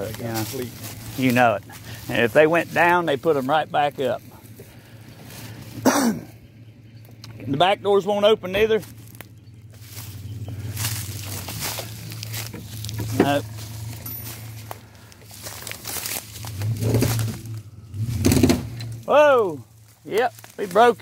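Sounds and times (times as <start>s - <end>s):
van engine running: 0.0s - 21.0s.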